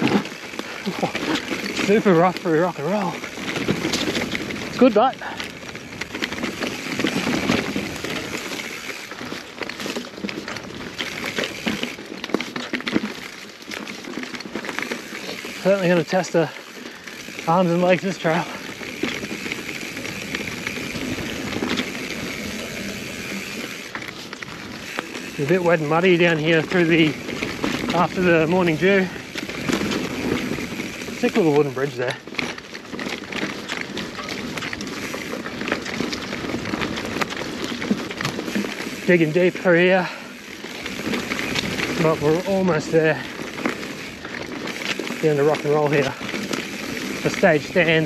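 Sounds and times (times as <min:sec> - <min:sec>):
bike rattling and knocking: 0:00.0 - 0:48.0
bike tyres crunching over rocks: 0:00.0 - 0:48.0.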